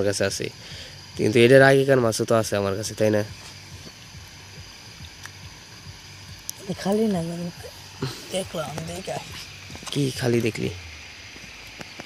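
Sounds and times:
water bubbling from aeration hose: 3.6 - 9.9.

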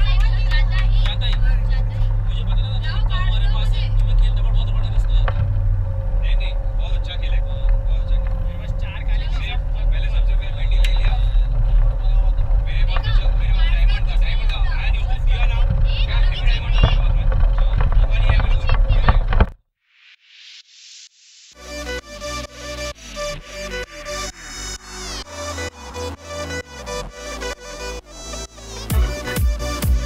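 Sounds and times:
bus engine and road noise: 0.0 - 19.6, 21.6 - 30.0.

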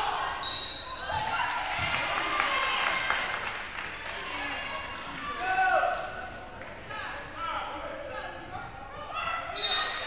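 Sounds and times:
voices echoing in a gymnasium: 0.0 - 10.0
referee's whistle: 0.4 - 1.3, 9.5 - 10.0.

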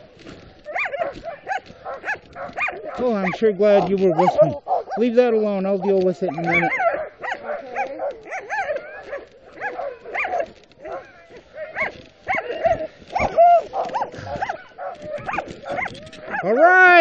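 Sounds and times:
sled dogs barking and yipping: 0.0 - 17.0.

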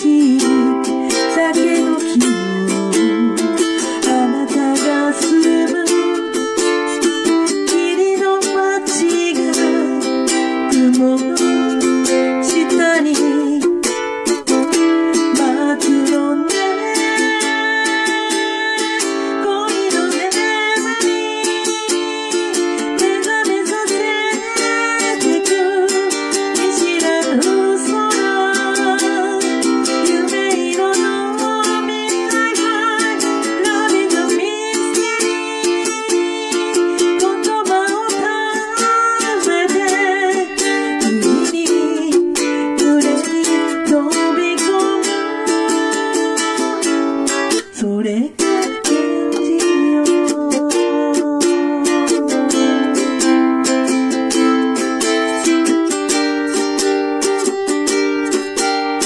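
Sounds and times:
person singing: 0.0 - 59.0
ukulele strumming chords: 0.0 - 59.0.

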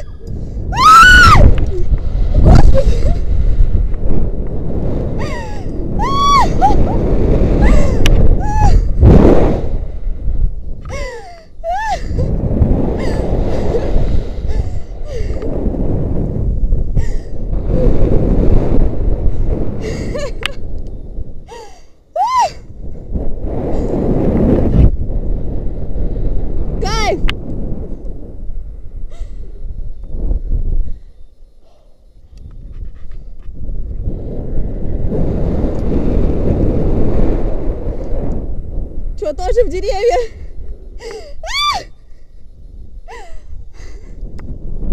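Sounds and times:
wind rushing over microphone: 0.0 - 44.9
person crying out: 5.2 - 6.9, 10.9 - 12.2.

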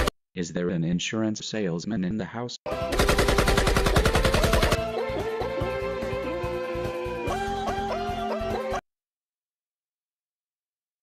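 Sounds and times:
cartoon automatic rifle fire: 2.7 - 4.8
music: 2.7 - 8.8.

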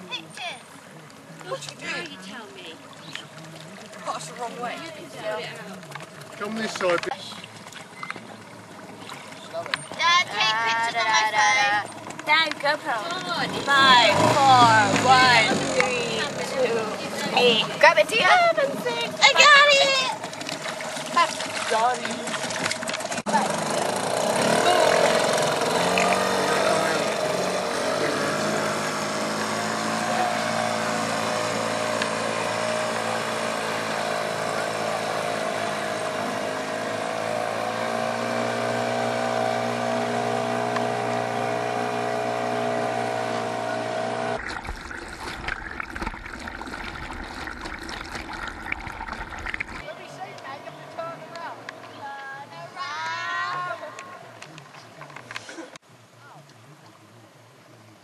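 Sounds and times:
small outboard motor running: 0.0 - 55.8.

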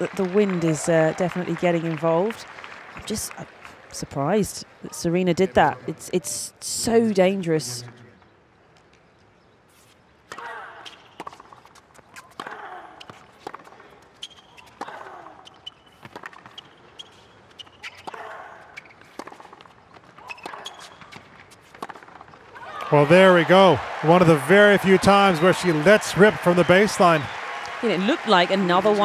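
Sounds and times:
racquets striking tennis ball: 10.3 - 22.4
tennis ball bouncing: 10.3 - 22.4
players grunting: 22.7 - 29.0.

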